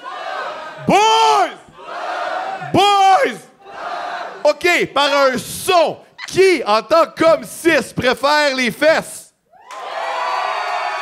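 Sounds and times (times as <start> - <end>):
crowd yelling and cheering: 0.0 - 4.6, 9.5 - 11.0
man shouting into microphone: 0.8 - 1.7, 2.6 - 3.5, 4.5 - 9.3.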